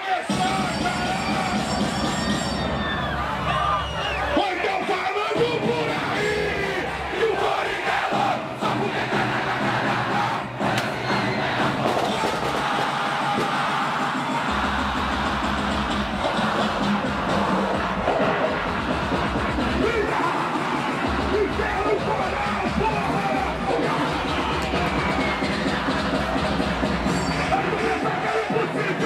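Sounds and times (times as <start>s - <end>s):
crowd yelling and chanting: 0.0s - 29.0s
funk music over sound system: 0.0s - 29.0s
heavy bass: 5.4s - 29.0s.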